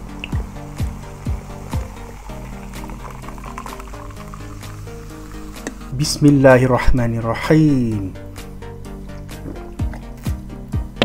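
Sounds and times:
background music with steady beat: 0.0 - 11.0
cola pouring into a glass: 0.2 - 5.9.

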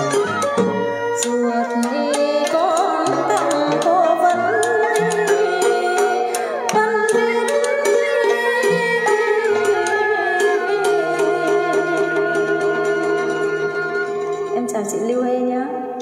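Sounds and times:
melodic instruments gliding notes: 0.0 - 16.0.

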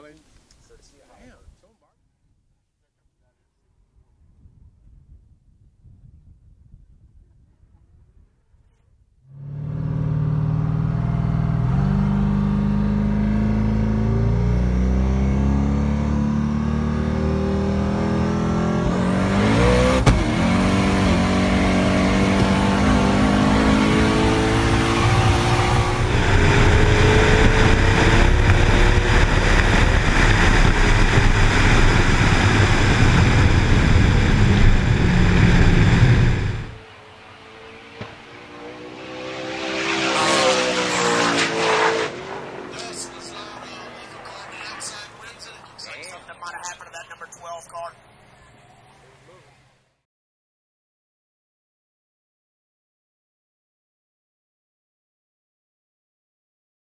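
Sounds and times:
car engine revving: 9.3 - 47.2
distant car passing: 9.3 - 49.8.

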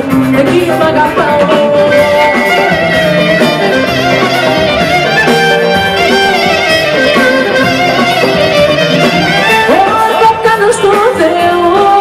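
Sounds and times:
folk band lead melody instrument: 0.0 - 12.0
steady bass accompaniment: 0.0 - 12.0.

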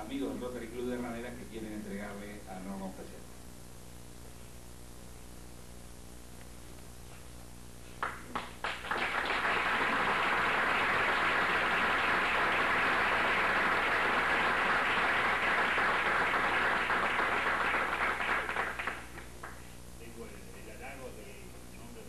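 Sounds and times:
audience applause: 8.0 - 19.6.

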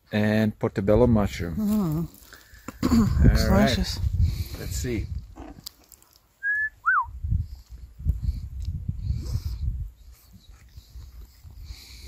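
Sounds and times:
whistled notes: 6.4 - 7.2.

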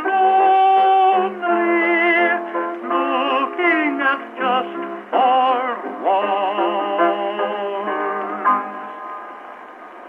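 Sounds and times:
tenor singing on old phonograph: 0.0 - 9.5
piano accompaniment: 0.0 - 10.0.

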